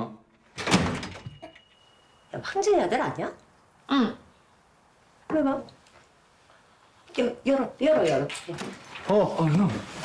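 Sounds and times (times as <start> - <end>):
door rattle: 0.5 - 1.4
wooden door banging: 0.5 - 1.4.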